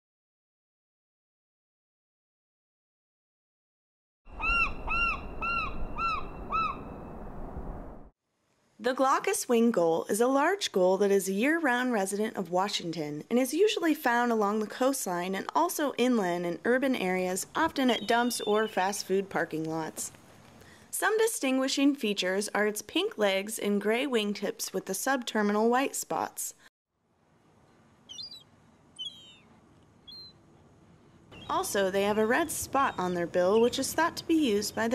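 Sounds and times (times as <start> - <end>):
gull calling: 4.3 - 6.9, 28.1 - 29.4
high-pitched bird calls: 4.3 - 7.1, 17.6 - 19.1, 28.1 - 30.4, 31.3 - 34.9
faint outdoor background noise: 5.8 - 34.9.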